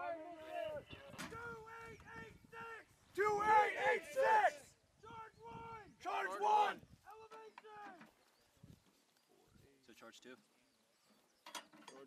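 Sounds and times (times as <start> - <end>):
men shouting commands: 0.0 - 8.1.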